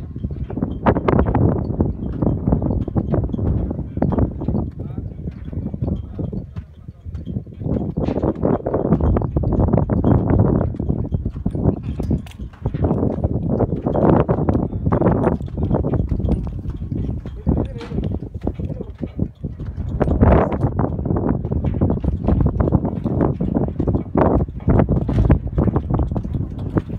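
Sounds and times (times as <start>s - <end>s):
wind buffeting microphone: 0.0s - 26.9s.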